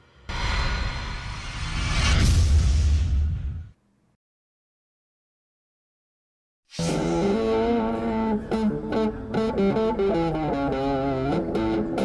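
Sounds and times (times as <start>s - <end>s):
loud electric guitar jam: 6.8s - 12.0s.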